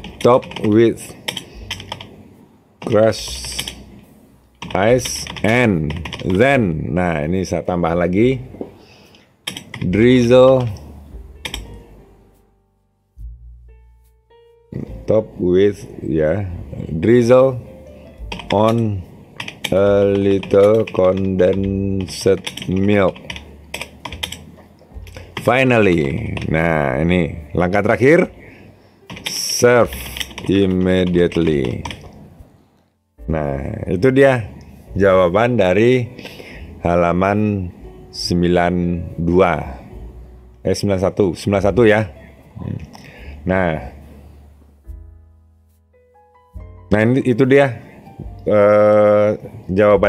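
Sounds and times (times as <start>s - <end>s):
keyboard keys clicking: 0.0s - 2.2s, 2.8s - 3.9s, 4.6s - 6.5s, 9.5s - 11.8s, 18.2s - 26.6s, 29.1s - 32.2s.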